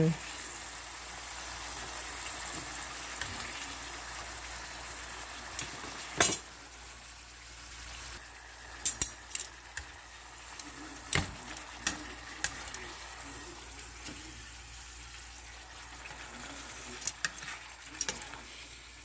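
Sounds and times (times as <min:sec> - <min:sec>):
food sizzling in oil: 0:00.0 - 0:19.0
metal utensil clacking: 0:08.8 - 0:09.9.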